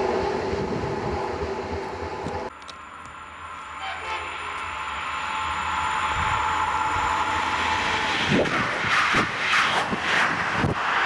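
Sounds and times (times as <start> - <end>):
train passing at high speed: 0.0 - 11.0.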